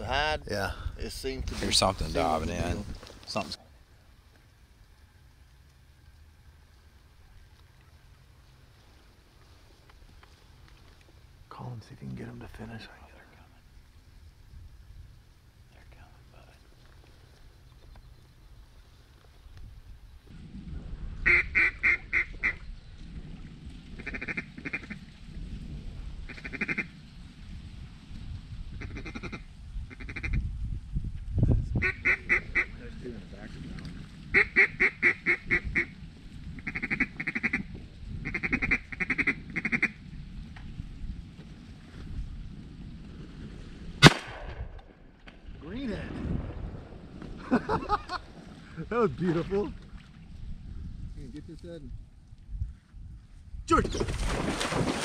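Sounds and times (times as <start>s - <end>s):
duck call quacking: 21.3s - 22.6s, 31.8s - 32.7s, 34.4s - 35.9s, 36.6s - 40.0s
shotgun shot: 44.0s - 45.0s.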